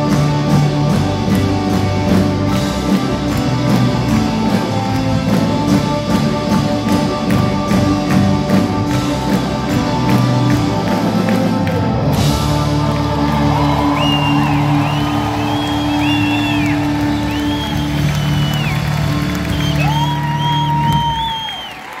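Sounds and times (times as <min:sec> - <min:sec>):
live band playing: 0:00.0 - 0:22.0
audience whistling and cheering: 0:12.1 - 0:22.0.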